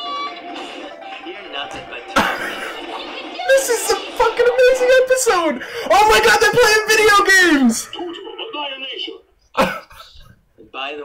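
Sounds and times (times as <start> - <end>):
man clearing throat: 2.1 - 2.8, 9.6 - 10.4.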